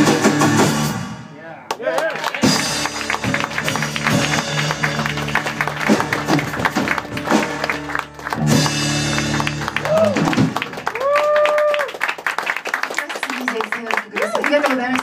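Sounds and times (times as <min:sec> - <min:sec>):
drum hits: 0:00.0 - 0:01.3, 0:02.4 - 0:10.8
live rock band playing: 0:00.0 - 0:01.4, 0:02.2 - 0:11.3.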